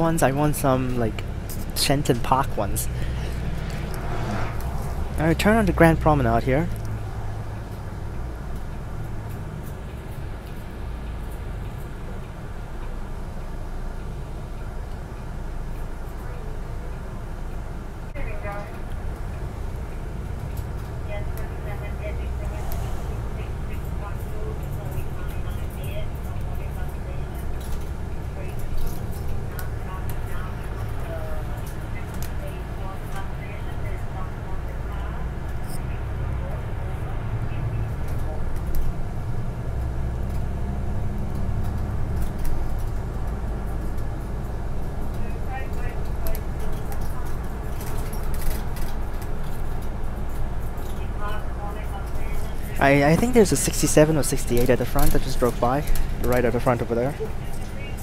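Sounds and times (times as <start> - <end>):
bus engine rumble: 0.0 - 58.0
road noise: 0.0 - 58.0.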